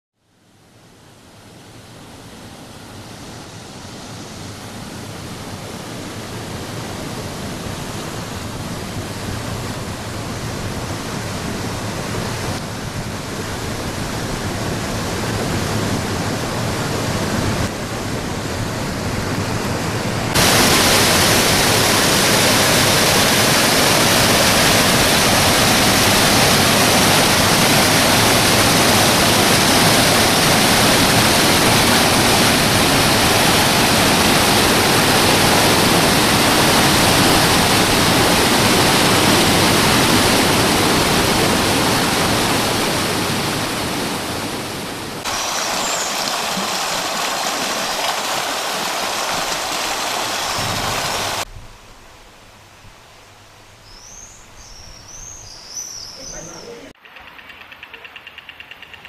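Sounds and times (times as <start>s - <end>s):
water rushing through lock gates: 2.0s - 51.5s.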